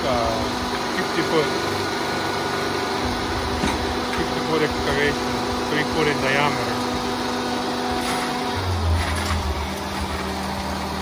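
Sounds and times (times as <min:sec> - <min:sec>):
drill rig engine humming: 0:00.0 - 0:11.0.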